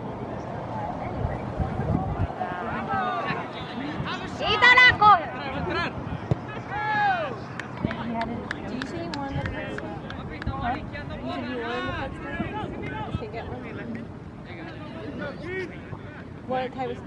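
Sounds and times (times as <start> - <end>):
players and spectators shouting: 2.2 - 7.5.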